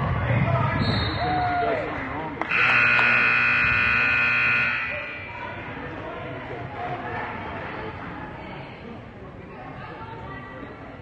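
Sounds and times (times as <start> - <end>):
court noise: 0.0 - 7.6
voices: 0.2 - 11.0
scoreboard horn buzz: 2.4 - 5.6.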